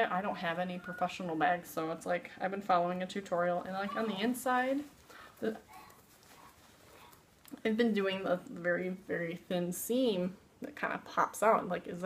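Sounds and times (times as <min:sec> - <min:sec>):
fabric bag rustling: 0:03.8 - 0:09.5.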